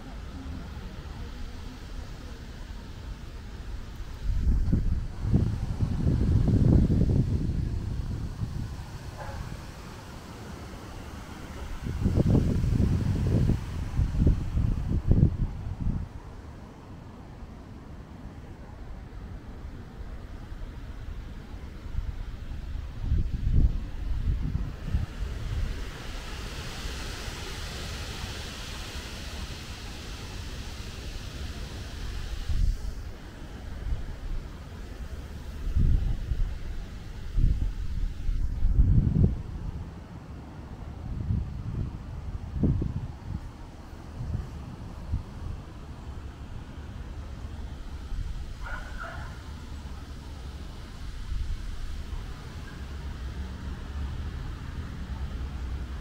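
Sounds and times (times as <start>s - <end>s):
wind gusting on microphone: 0.0s - 56.0s.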